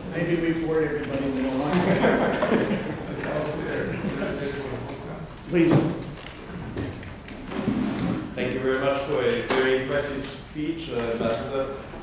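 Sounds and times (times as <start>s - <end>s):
men talking: 0.0s - 6.2s, 8.3s - 11.9s.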